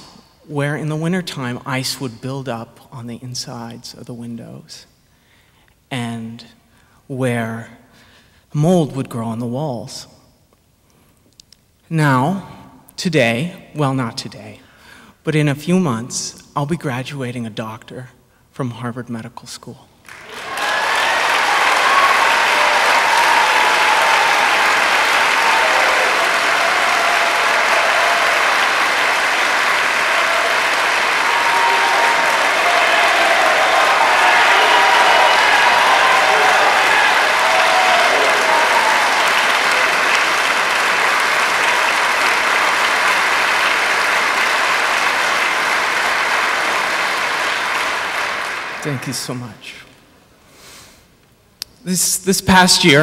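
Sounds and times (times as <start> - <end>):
audience applauding: 20.0 - 49.6.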